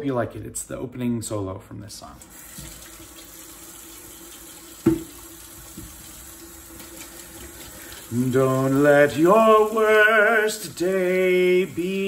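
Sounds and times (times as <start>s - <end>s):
background hiss: 1.9s - 12.0s.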